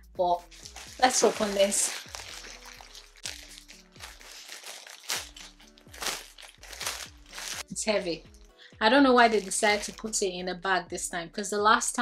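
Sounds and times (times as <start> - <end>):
plastic bag crinkling: 0.4 - 7.7, 9.1 - 10.2
background music with beat: 5.2 - 10.3.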